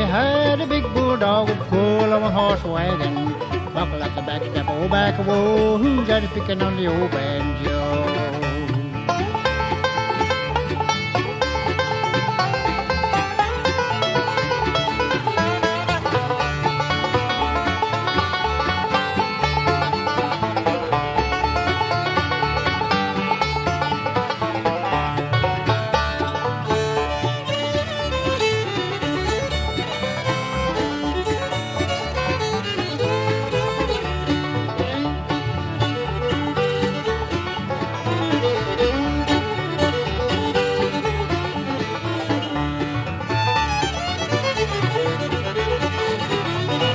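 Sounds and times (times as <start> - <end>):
banjo: 0.0 - 46.9
bass: 0.0 - 46.9
fiddle: 0.0 - 46.9
rhythm guitar: 0.0 - 46.9.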